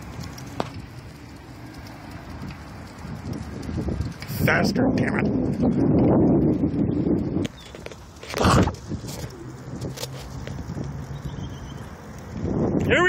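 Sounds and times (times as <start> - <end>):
tyres rolling on asphalt: 0.0 - 13.0
wind rushing over microphone: 0.0 - 13.0.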